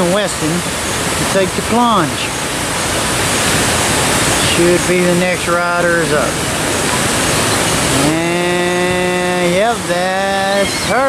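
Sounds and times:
water rushing down a chute: 0:00.0 - 0:11.0
low steady note: 0:03.8 - 0:11.0.

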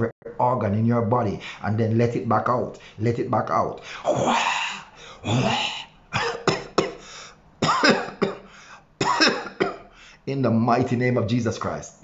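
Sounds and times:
man coughing: 0:05.2 - 0:10.0
man blowing out breaths: 0:07.0 - 0:07.4, 0:08.4 - 0:08.9.

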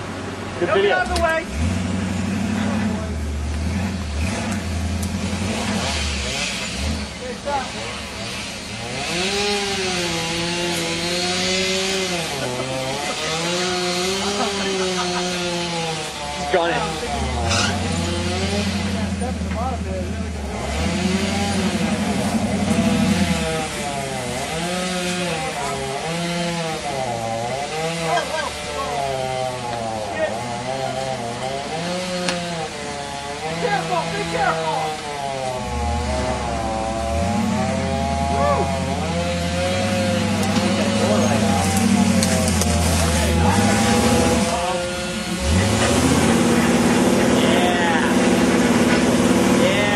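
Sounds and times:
off-road vehicle engine revving: 0:00.0 - 0:49.9.

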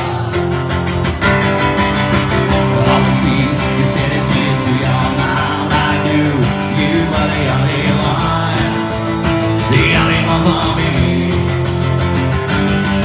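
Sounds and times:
strummed acoustic guitar: 0:00.0 - 0:13.0.

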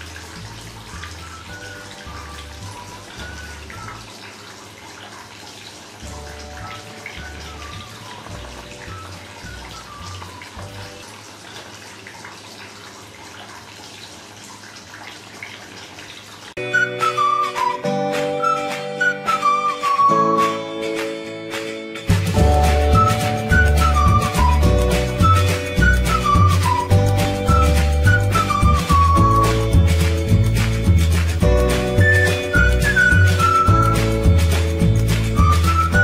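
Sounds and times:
soft background music: 0:00.0 - 0:05.3, 0:06.0 - 0:11.8, 0:16.6 - 0:36.0
fountain water splashing: 0:00.0 - 0:36.0.

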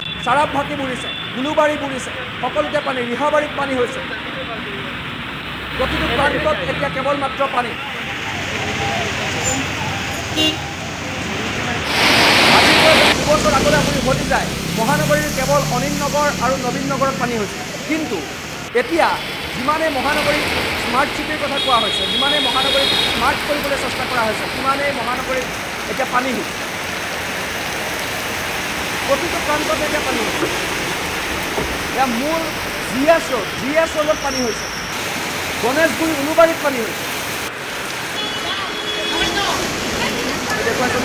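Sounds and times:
heavy rain pouring: 0:00.0 - 0:41.0
traffic driving through floodwater: 0:00.0 - 0:41.0
car horn toot: 0:10.2 - 0:10.8, 0:21.6 - 0:23.2, 0:38.2 - 0:39.6
person speaking: 0:11.2 - 0:26.6, 0:29.0 - 0:30.7.

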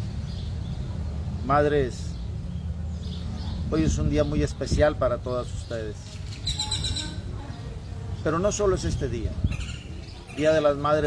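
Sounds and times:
bird calling: 0:06.0 - 0:08.3, 0:09.4 - 0:11.0.

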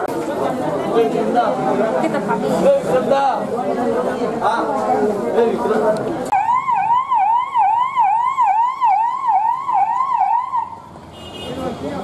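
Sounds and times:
police siren yelping: 0:06.4 - 0:10.8.

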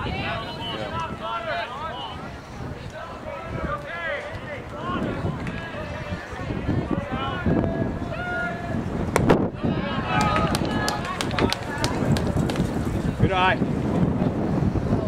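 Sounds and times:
sharp claps: 0:10.1 - 0:12.9.

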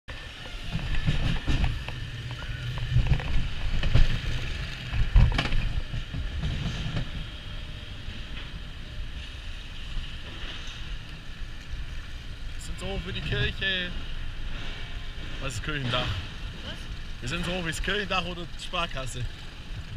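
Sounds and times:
roller coaster wheels rumbling: 0:00.1 - 0:19.9.

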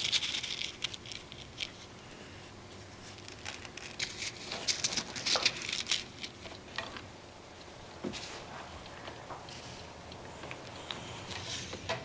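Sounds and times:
grains pattering onto paper: 0:00.0 - 0:06.9.

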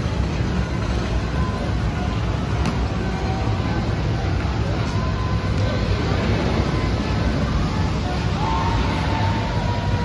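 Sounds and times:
faint distant noise: 0:00.0 - 0:10.0
steady low rumble: 0:00.0 - 0:10.0.

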